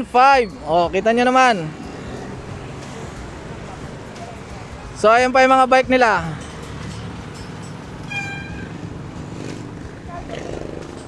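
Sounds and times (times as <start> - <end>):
street background noise: 0.0 - 11.0
high-pitched tone: 6.8 - 9.0.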